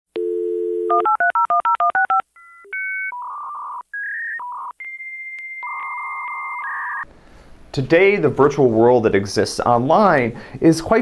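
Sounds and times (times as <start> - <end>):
dial tone: 0.2 - 7.0
modem electronic tones: 0.2 - 7.0.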